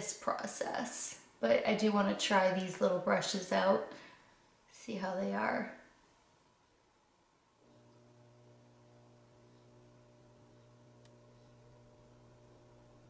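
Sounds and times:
faint electrical hum: 0.0s - 13.0s.

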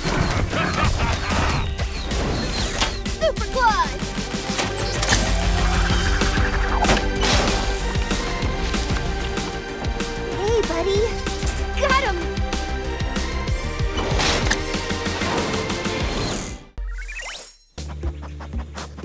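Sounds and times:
cartoon action music: 0.0s - 19.0s.

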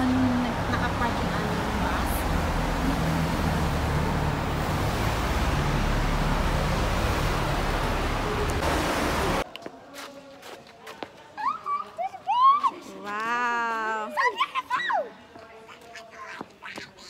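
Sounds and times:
traffic rumble echoing in tunnel: 0.0s - 9.4s.

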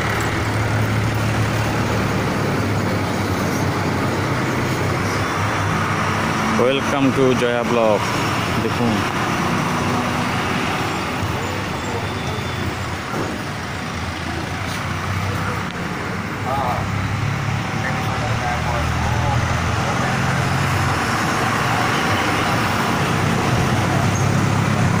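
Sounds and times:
road traffic: 0.0s - 25.0s.

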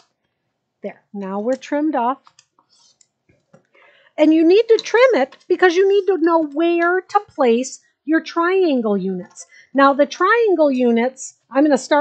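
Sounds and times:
person speaking: 0.8s - 12.0s.

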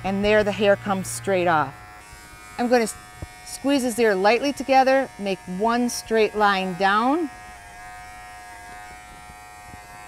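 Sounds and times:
cordless hair clipper humming: 0.0s - 10.0s.

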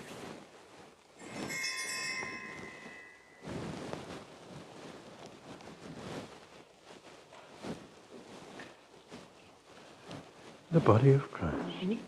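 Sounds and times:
ringing of steady tones: 1.2s - 3.7s.

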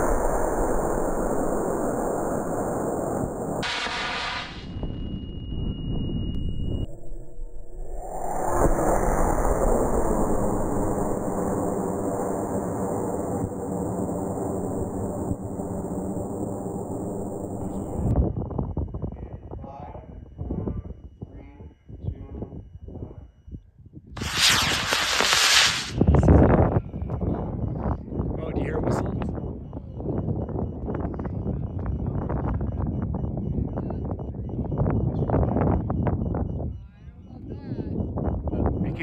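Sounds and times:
rocket motor rushing: 0.0s - 5.0s, 6.4s - 18.1s, 24.2s - 26.0s
steady rushing with a hum: 0.0s - 5.7s, 6.4s - 18.2s.

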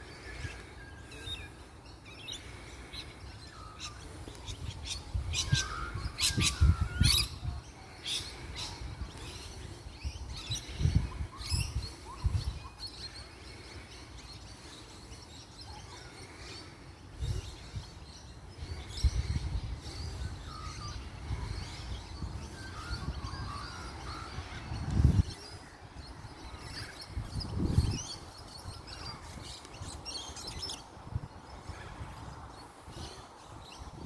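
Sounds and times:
birds chirping and calling: 0.0s - 34.0s.

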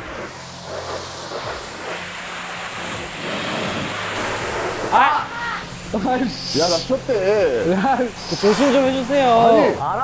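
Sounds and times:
pressure washer spray hissing: 0.0s - 10.0s.

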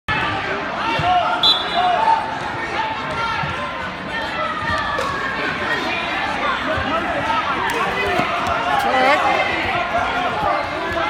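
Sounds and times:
crowd chatter and shouting: 0.1s - 11.0s.

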